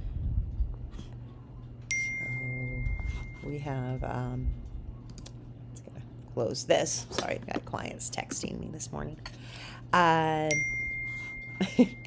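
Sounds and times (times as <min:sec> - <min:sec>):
notification chime ding: 0:01.9 - 0:04.2.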